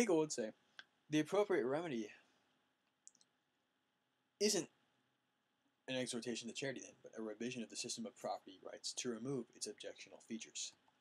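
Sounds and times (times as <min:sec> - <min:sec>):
faint sharp clicks: 0:02.8 - 0:03.4.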